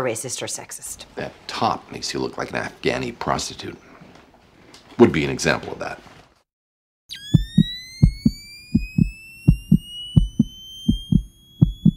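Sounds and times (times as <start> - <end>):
rising electronic tone: 7.1 - 11.9
heartbeat-like low thumps: 7.2 - 11.9.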